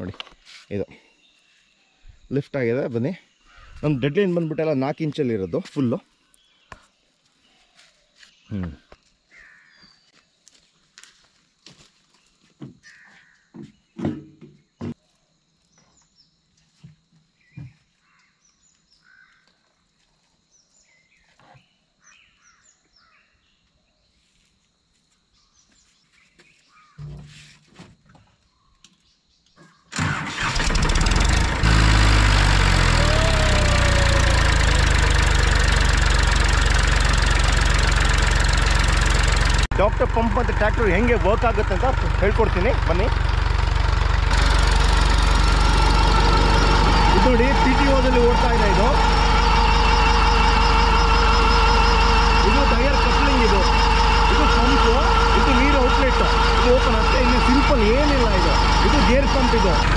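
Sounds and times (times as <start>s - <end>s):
knocks: 13.6s - 15.0s
tractor diesel engine running: 30.0s - 59.9s.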